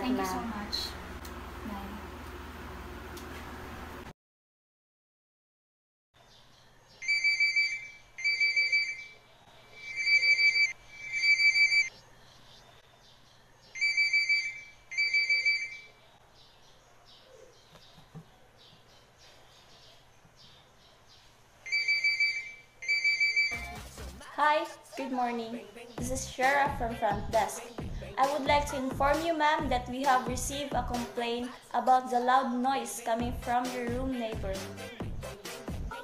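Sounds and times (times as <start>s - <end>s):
electronic telephone ringing: 7.0s - 9.2s, 9.8s - 11.9s, 13.8s - 16.0s, 21.6s - 23.8s.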